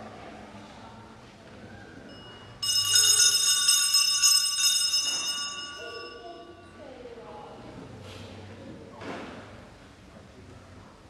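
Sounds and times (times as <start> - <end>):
small bells ringing: 2.1 - 6.8.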